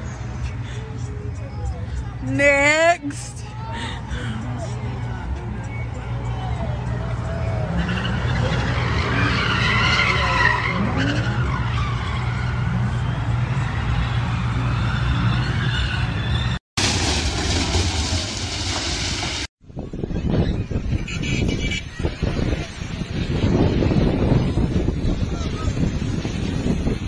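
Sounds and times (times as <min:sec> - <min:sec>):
car engines running: 0:03.5 - 0:19.5
tyres skidding and squealing: 0:05.7 - 0:19.5
wind gusts on microphone: 0:16.8 - 0:27.0.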